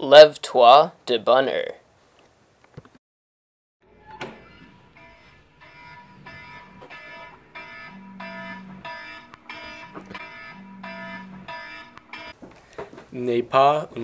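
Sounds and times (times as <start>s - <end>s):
electronic alarm beeping: 3.9s - 12.4s.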